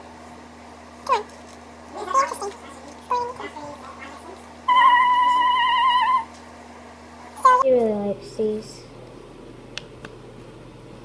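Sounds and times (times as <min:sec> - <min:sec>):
falling vocal call: 0:04.7 - 0:06.3.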